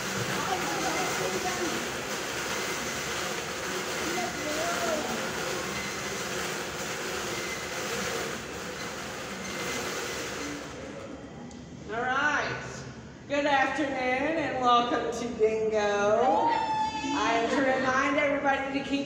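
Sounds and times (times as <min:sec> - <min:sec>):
bingo balls rattling in cage: 0:00.0 - 0:11.0
woman speaking: 0:11.9 - 0:19.0.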